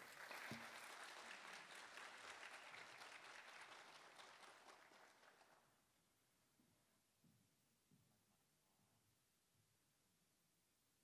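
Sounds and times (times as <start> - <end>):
audience applauding: 0.0 - 5.7.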